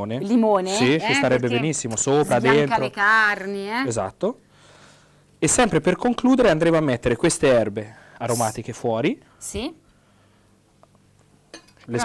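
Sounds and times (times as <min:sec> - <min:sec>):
person speaking: 0:00.6 - 0:03.0, 0:08.2 - 0:08.7.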